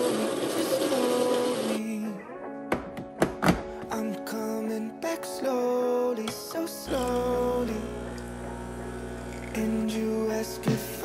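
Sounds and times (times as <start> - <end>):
coffee grinder grinding beans: 0.0 - 1.8, 6.8 - 11.0
background music: 0.0 - 11.0.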